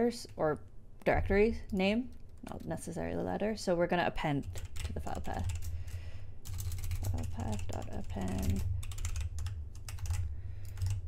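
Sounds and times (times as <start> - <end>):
steady low hum: 0.0 - 11.0
computer keyboard keys clicking: 4.4 - 5.7, 6.4 - 11.0.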